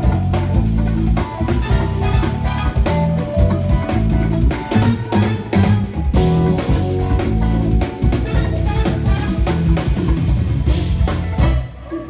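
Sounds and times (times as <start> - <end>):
drum kit hitting steadily: 0.0 - 11.8
jazz fusion band playing: 0.0 - 12.0.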